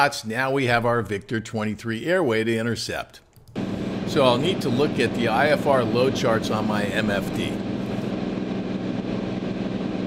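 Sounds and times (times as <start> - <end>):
aircraft engine and propeller droning: 3.6 - 10.0.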